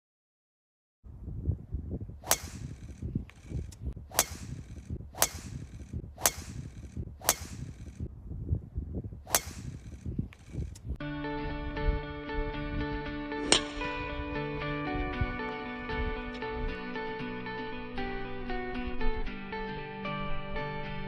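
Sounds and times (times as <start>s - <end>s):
golf club striking ball: 2.2s - 8.0s, 9.3s - 10.8s, 13.4s - 14.2s.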